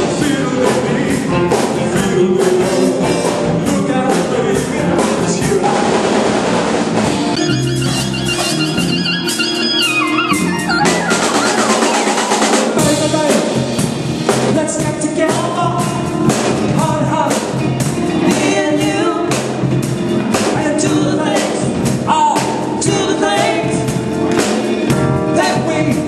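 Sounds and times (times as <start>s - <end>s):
drum kit beat: 0.0s - 26.0s
swing band with horns: 0.0s - 26.0s.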